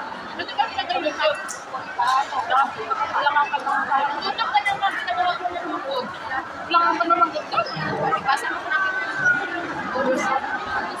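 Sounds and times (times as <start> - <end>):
women talking: 0.4 - 11.0.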